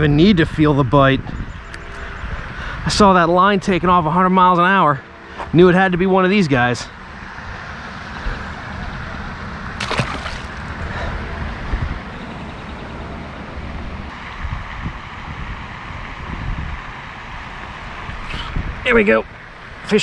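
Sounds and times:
wind buffeting microphone: 0.0s - 4.2s, 8.2s - 12.5s, 13.6s - 19.0s.

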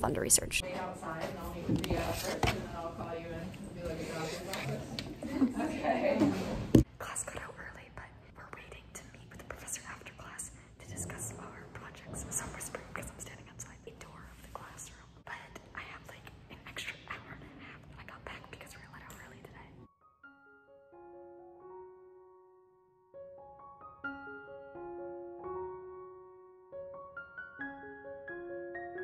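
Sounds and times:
woman whispering: 6.9s - 19.9s
gentle piano music: 19.9s - 29.0s.

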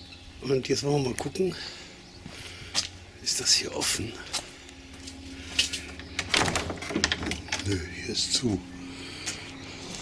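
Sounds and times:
locked door clunking and rattling: 6.2s - 7.8s.

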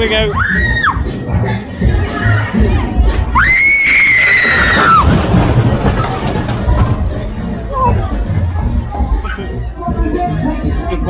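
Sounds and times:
crowd noise: 0.0s - 11.0s
fairground music: 6.7s - 11.0s.

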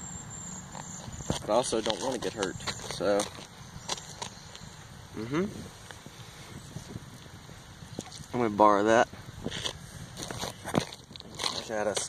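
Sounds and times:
boots stepping on gravel: 0.7s - 4.7s, 9.5s - 12.0s.

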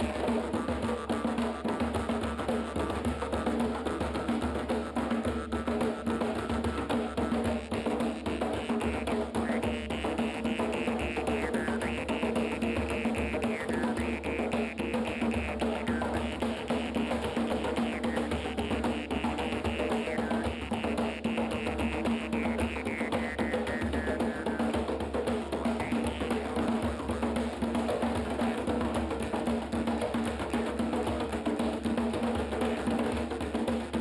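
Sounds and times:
djembes played by hand: 0.0s - 34.0s.

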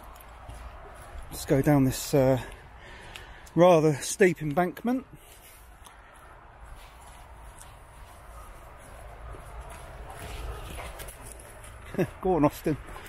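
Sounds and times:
footsteps on leafy dirt path: 0.0s - 13.0s.

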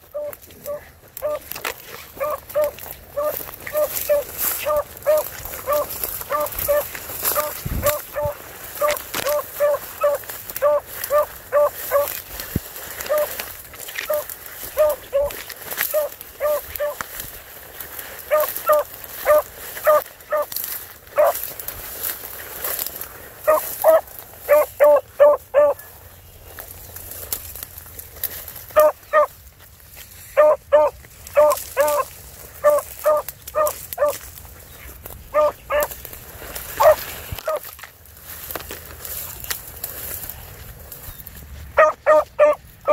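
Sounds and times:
hound barking: 0.0s - 17.1s, 18.2s - 21.6s, 23.4s - 26.0s, 28.7s - 29.4s, 30.3s - 34.3s, 35.3s - 37.7s, 41.7s - 42.9s
dry brush crackling: 0.0s - 42.9s.

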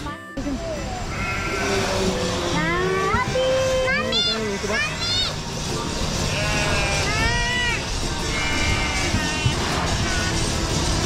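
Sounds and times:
background music: 0.0s - 11.0s
sheep bleating: 1.1s - 2.1s, 6.1s - 10.4s.

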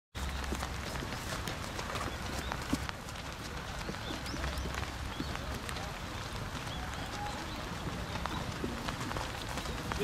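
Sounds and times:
horse hoofbeats on wet sand: 0.2s - 10.0s
rain: 0.2s - 10.0s.

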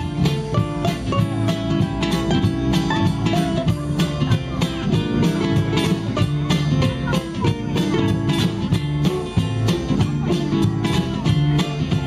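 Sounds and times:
ukuleles strumming: 0.0s - 12.0s
walking double bass: 0.0s - 12.0s.

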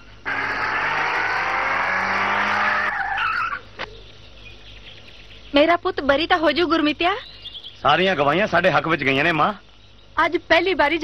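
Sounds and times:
tyres skidding: 0.0s - 3.9s.

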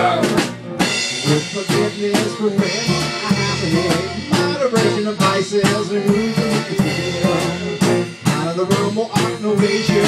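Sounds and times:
band playing live: 0.0s - 10.0s
bass guitar: 0.0s - 10.0s.

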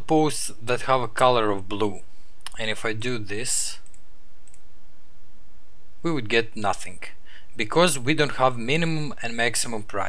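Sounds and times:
low hiss: 0.0s - 10.0s
computer mouse click: 3.8s - 4.7s.

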